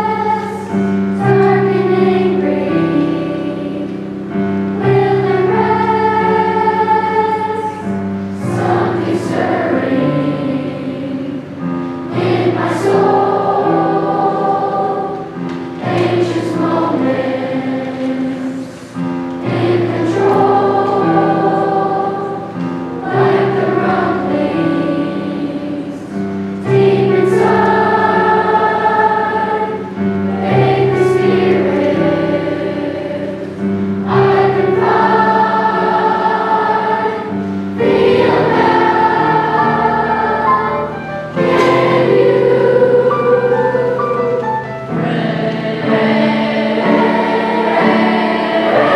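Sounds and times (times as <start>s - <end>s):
children's choir singing: 0.0s - 48.9s
electric piano: 0.0s - 48.9s.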